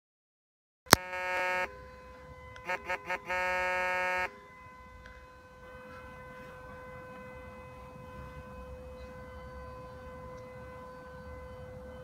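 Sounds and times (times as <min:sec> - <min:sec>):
steady buzzy tone: 0:01.0 - 0:01.8, 0:02.6 - 0:04.3.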